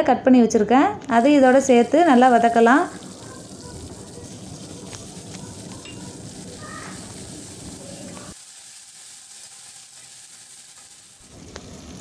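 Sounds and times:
vegetables sizzling in oil: 1.1 - 12.0.

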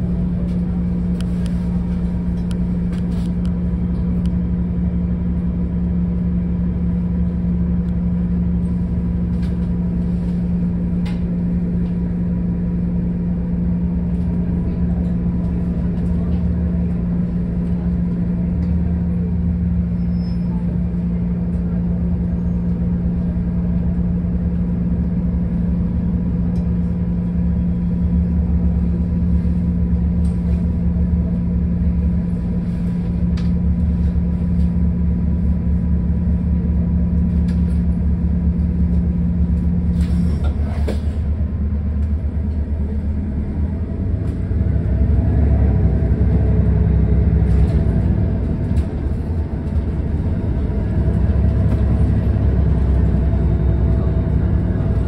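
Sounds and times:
bus engine rumbling: 0.0 - 55.0
road rumble: 0.0 - 55.0.

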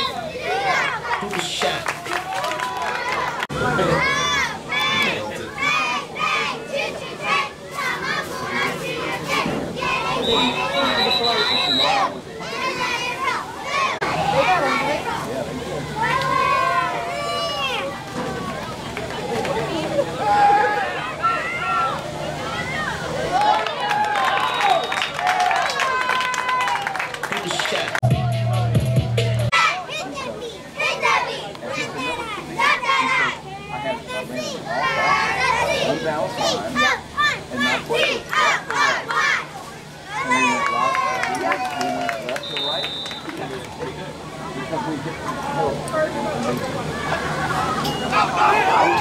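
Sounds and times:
children calling and shouting: 0.0 - 26.8, 29.5 - 49.0
sideline crowd noise: 0.0 - 49.0.

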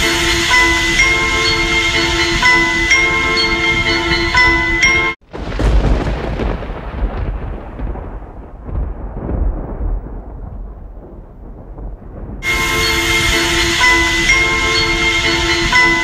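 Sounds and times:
music with bell-like mallet tones: 0.0 - 5.2, 13.8 - 16.0
thunder-like boom and rumble: 5.2 - 16.0.

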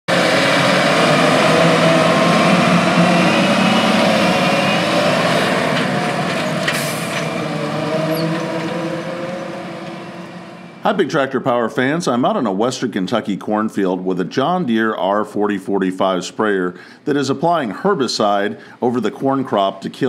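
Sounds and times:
diesel engine running: 0.1 - 11.0.

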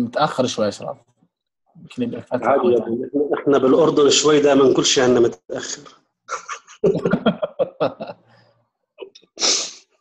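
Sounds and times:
person sneezing: 9.4 - 9.9.

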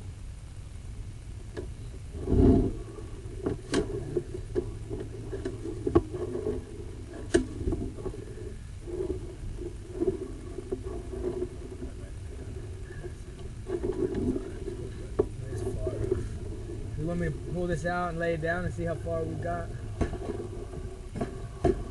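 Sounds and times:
low rumble: 0.0 - 21.9
cable knocking and scraping in pipe: 1.6 - 17.9, 18.6 - 21.9.

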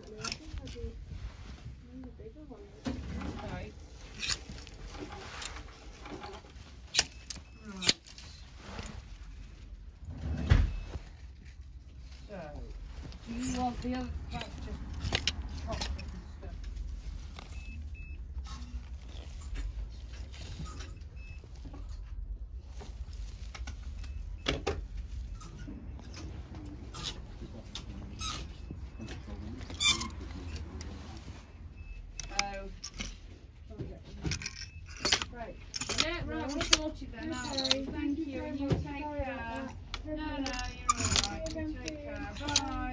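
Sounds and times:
fabric rustling: 0.0 - 42.9.

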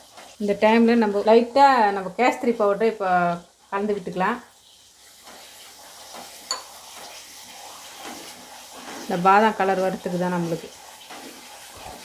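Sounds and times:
halwa sizzling in a pan: 0.0 - 12.0
wooden spatula stirring: 0.0 - 12.0.

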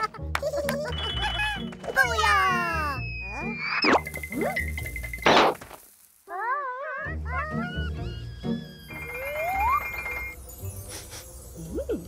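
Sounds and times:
background music: 0.0 - 5.4, 6.9 - 12.0
cartoon character whiny vocal: 6.3 - 8.6.

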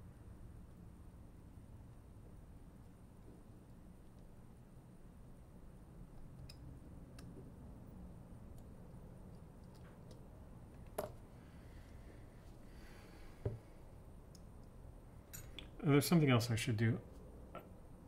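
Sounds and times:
small tools clicking and tapping: 9.3 - 11.2.

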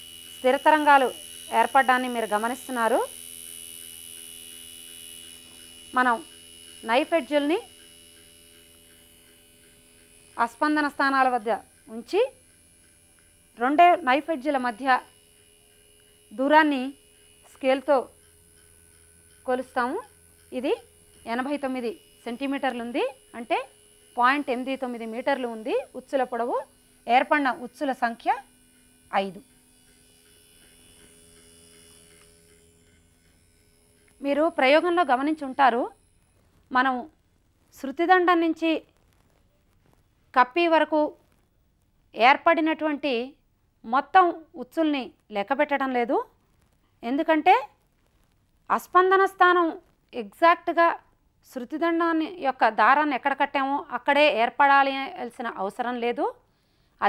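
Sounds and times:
tuning fork buzzing: 0.0 - 57.0.

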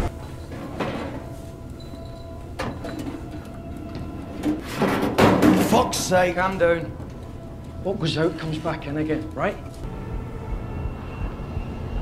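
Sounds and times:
low sustained drone: 6.0 - 12.0.

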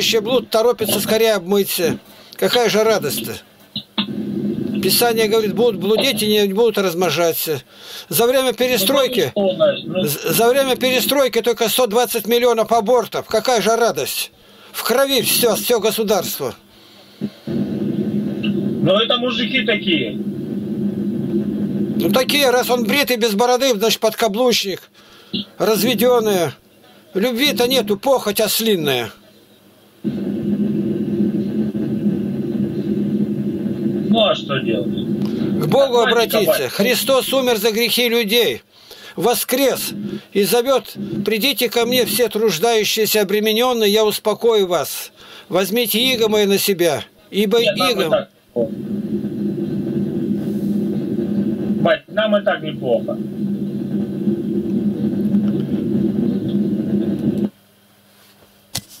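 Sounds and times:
constant hum: 0.0 - 59.0
low rumbling drone: 4.1 - 6.2, 17.5 - 22.1, 30.1 - 36.5, 39.7 - 40.2, 41.0 - 41.3, 48.6 - 51.8, 53.0 - 57.4.

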